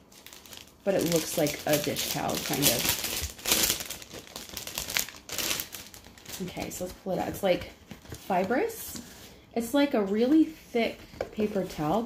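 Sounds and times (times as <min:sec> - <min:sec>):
plastic packaging crinkling: 0:00.0 - 0:08.3.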